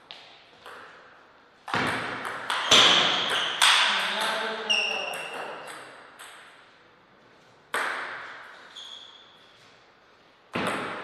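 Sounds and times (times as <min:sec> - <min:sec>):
table tennis ball pinging: 0:00.6 - 0:01.0, 0:01.6 - 0:06.6, 0:07.7 - 0:08.5, 0:10.5 - 0:11.0.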